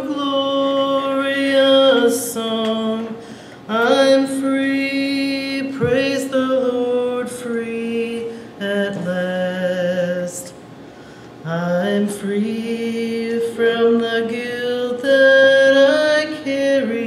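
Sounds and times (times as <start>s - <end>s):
woman singing gospel: 0.0s - 10.6s, 11.4s - 17.0s
singer breathing: 3.2s - 3.7s, 10.8s - 11.4s.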